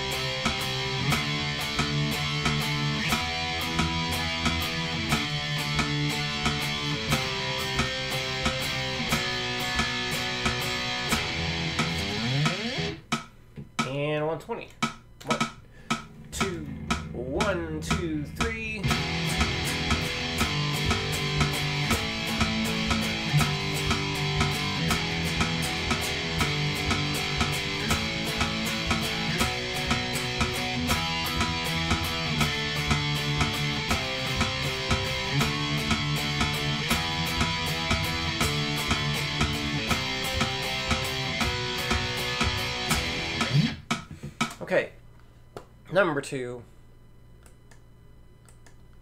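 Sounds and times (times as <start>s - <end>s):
electric guitar power chords: 0.0s - 13.2s, 15.2s - 44.0s
drum track: 0.0s - 44.8s.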